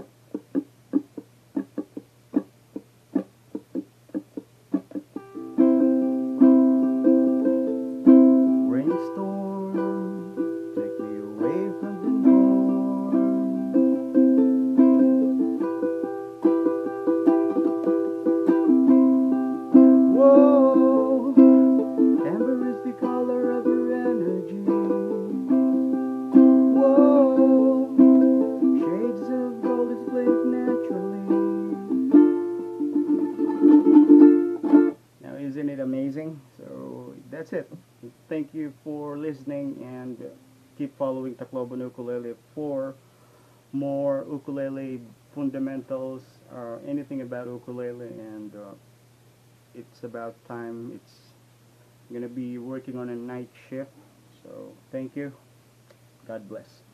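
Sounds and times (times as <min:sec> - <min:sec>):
ukulele strumming: 0:00.0 - 0:35.0.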